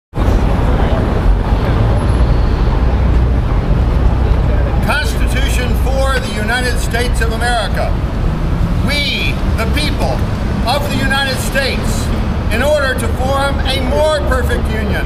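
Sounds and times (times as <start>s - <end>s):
city traffic rumble: 0.1s - 15.0s
person speaking: 8.8s - 15.0s.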